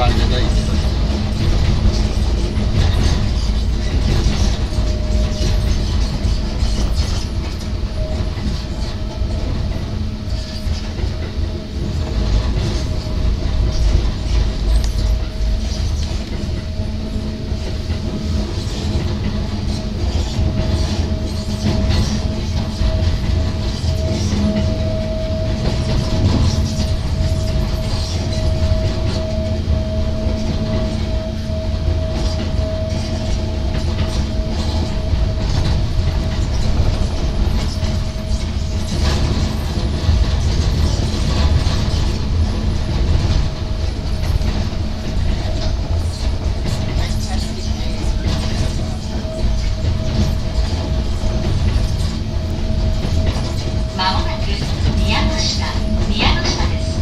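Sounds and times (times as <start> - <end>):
train motor whine: 0.0 - 57.0
train wheels rumbling on rails: 0.0 - 57.0.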